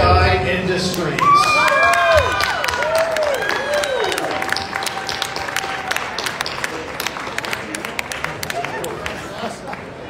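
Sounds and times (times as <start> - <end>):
audience applauding: 0.9 - 10.0.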